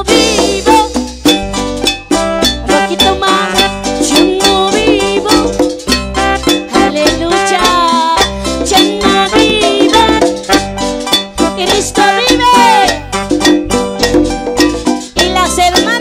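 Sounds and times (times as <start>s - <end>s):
congas beat: 0.0s - 16.0s
electronic keyboard melody: 0.8s - 16.0s.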